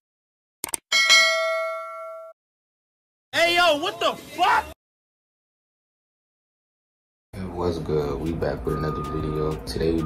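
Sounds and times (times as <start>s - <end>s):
bell ding: 0.9s - 2.4s.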